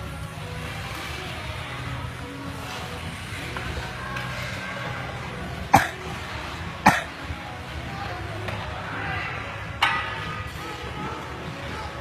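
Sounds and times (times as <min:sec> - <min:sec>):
person coughing: 0:05.7 - 0:06.0, 0:06.9 - 0:07.1.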